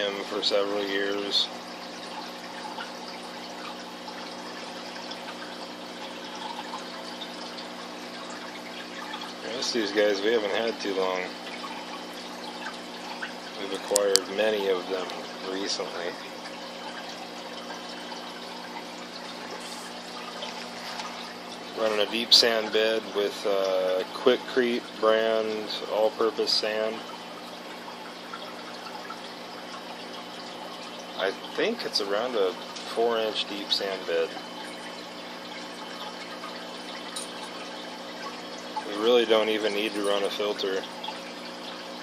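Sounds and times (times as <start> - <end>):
aquarium water trickling: 0.0 - 42.0
filter motor hum: 0.0 - 42.0.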